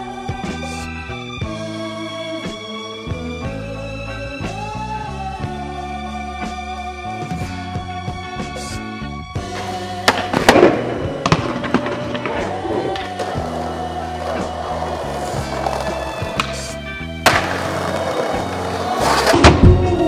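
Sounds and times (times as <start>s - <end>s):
skateboard wheels rolling on paving: 9.4s - 20.0s
skateboard clattering: 9.6s - 19.8s
sharp crack: 10.0s - 13.1s
skateboard slamming on stone: 15.4s - 19.9s.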